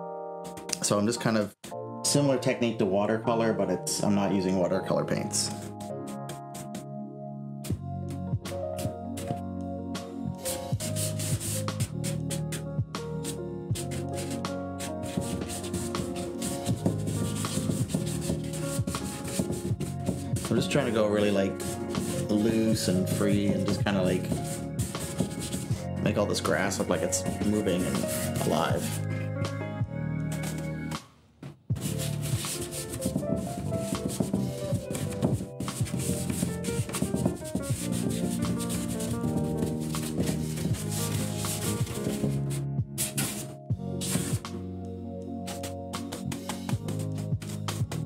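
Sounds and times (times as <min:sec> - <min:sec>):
background music: 0:00.0 - 0:31.1, 0:31.7 - 0:48.0
paintbrush scrubbing: 0:10.4 - 0:12.6, 0:13.2 - 0:25.8, 0:26.7 - 0:29.1, 0:31.8 - 0:44.4.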